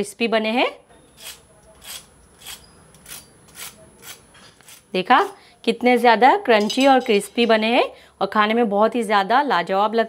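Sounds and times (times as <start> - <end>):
fork scraping crunchy fried food: 1.2 - 4.9.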